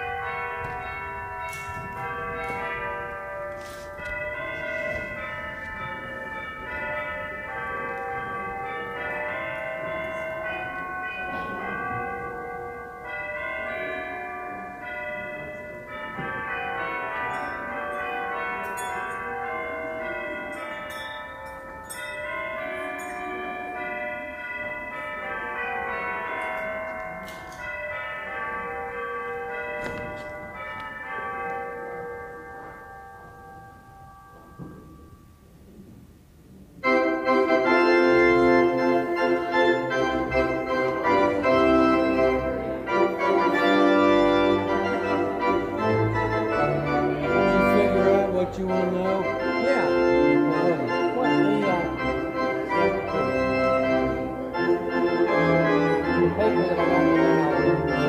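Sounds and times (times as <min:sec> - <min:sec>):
tuned bells ringing a melody: 0:00.0 - 0:35.4, 0:36.8 - 0:58.0.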